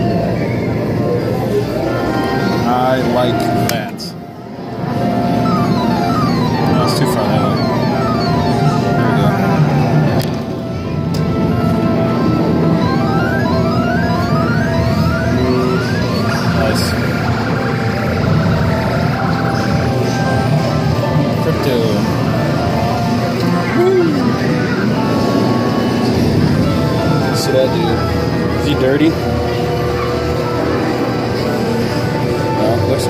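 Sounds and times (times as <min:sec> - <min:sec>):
electronic arcade game music: 0:00.0 - 0:33.0.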